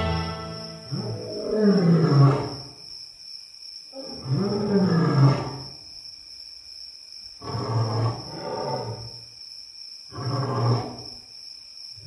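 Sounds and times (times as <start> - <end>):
high-pitched whine: 0.0 - 1.5.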